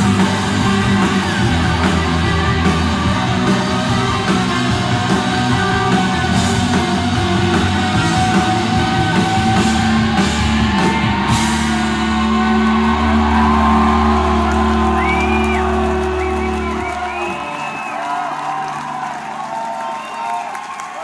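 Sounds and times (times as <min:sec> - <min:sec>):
rock band holding chord: 0:00.0 - 0:20.0
crowd cheering and whooping: 0:00.0 - 0:21.0.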